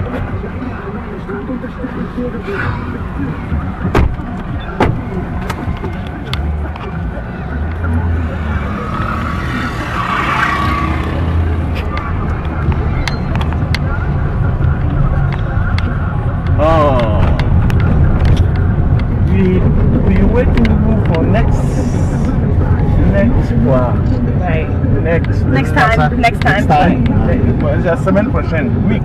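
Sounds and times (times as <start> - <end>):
car engine and road noise: 0.0 - 29.0.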